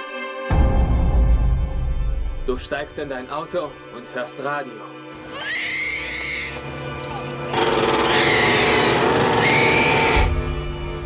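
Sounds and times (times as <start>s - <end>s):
music with high gliding tone: 0.0s - 11.0s
harsh rattling machine-like noise: 6.9s - 10.5s.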